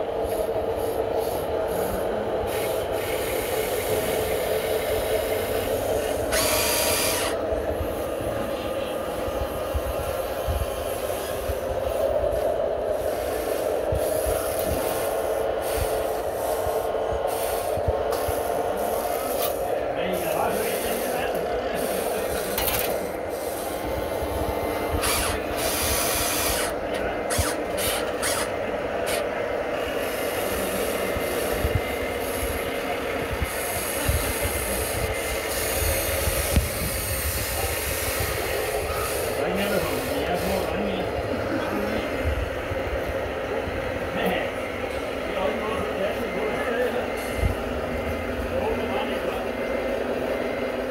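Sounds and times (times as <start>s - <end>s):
toy excavator motors whining: 0.0s - 41.2s.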